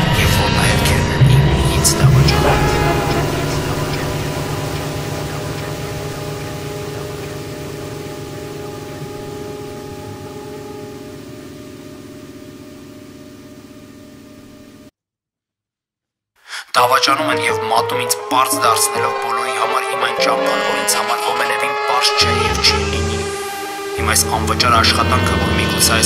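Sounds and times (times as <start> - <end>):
electronic drone of low tones: 0.0 - 14.9, 18.2 - 26.0.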